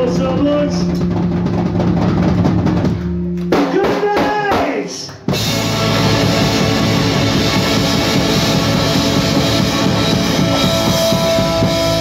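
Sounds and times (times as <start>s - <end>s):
busy drumming: 0.0s - 12.0s
rock band playing: 0.0s - 12.0s.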